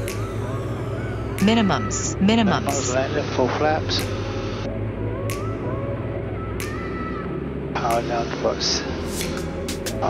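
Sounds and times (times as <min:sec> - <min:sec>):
aircraft engine drone: 0:00.0 - 0:10.0.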